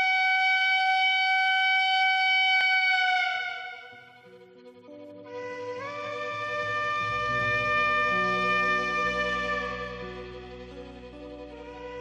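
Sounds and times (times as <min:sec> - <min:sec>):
long steady high tone: 0:00.0 - 0:12.0.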